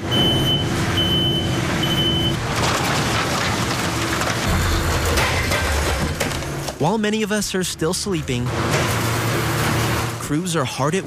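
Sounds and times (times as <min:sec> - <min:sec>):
truck reversing alarm beeping: 0:00.0 - 0:02.4.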